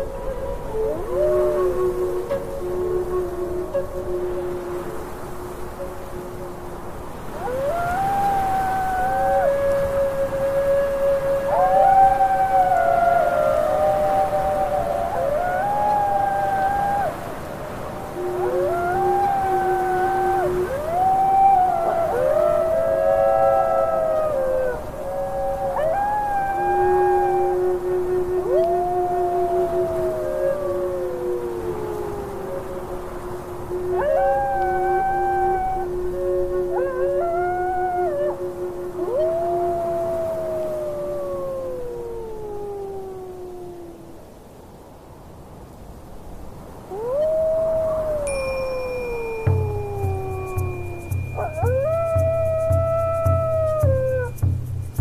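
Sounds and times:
wolves howling: 0.0s - 44.2s, 46.6s - 55.0s.

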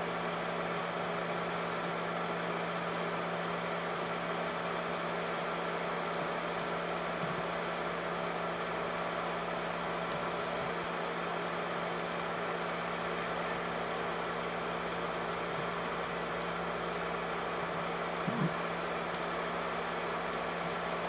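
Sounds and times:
constant low hum: 0.0s - 21.0s
film projector whirring: 0.0s - 21.0s.

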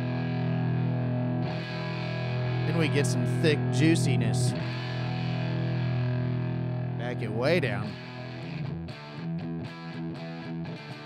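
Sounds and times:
overdriven electric guitar chords: 0.0s - 11.0s.

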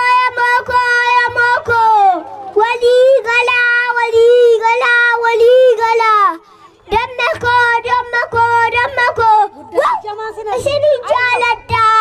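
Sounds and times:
child singing into a microphone: 0.0s - 12.0s.

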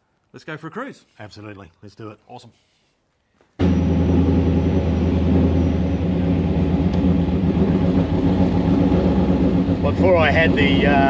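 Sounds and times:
car engine idling: 3.6s - 11.0s.

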